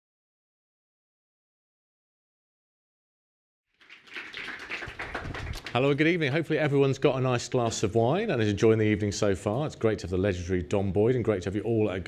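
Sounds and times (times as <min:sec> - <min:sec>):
audience applauding: 0:03.8 - 0:06.1.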